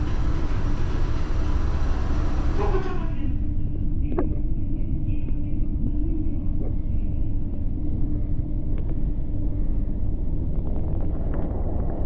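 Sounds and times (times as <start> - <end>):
escalator rumble: 0.0 - 12.0
faint even hum: 0.0 - 12.0.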